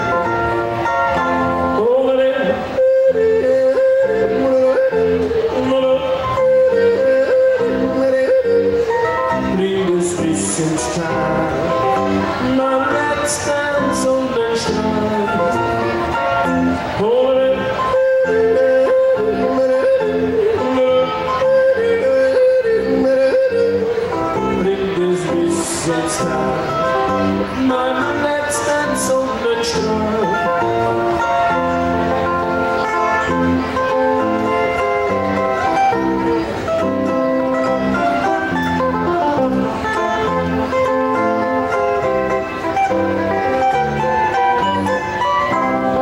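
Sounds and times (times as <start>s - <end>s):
man yodeling into microphone: 1.4s - 32.2s
zither accompaniment: 4.3s - 46.0s.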